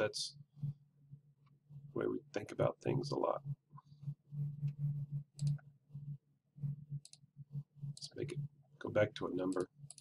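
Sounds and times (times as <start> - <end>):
low pulsing hum: 0.0 - 10.0
computer mouse clicks: 4.6 - 5.7, 7.0 - 7.3, 9.4 - 10.0.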